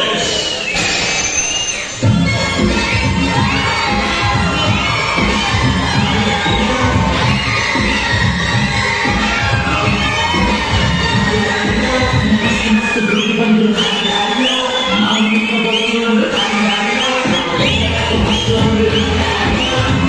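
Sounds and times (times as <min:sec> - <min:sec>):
audience shouting and cheering: 0:00.0 - 0:20.0
dance music with thumping beat: 0:02.0 - 0:14.4, 0:15.2 - 0:20.0.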